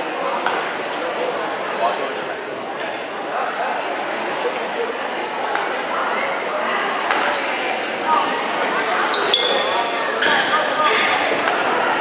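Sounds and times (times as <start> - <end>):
crowd chatter: 0.0 - 12.0
racket hitting shuttlecock: 7.1 - 7.4, 11.4 - 11.7
sneakers squeaking on floor: 9.1 - 11.2.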